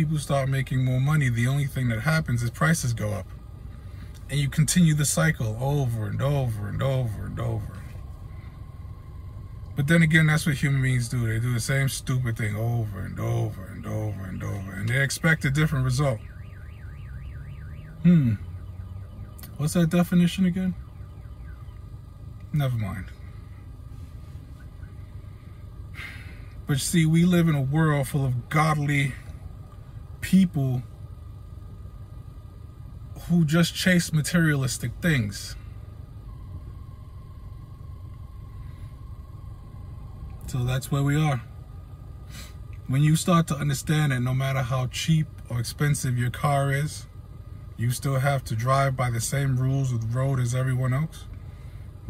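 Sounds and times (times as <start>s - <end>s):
warbling electronic alarm: 0.0s - 51.9s
faint thin steady tone: 0.0s - 52.0s
low rumble in car cabin: 0.0s - 52.0s.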